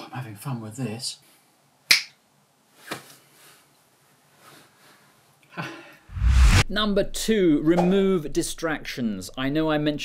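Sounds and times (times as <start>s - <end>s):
soft swish: 6.1s - 6.7s.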